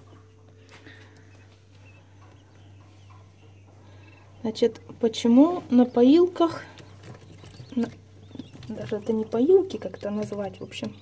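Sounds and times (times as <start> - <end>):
quail chicks peeping: 0.0 - 11.0
steady low hum: 0.0 - 11.0.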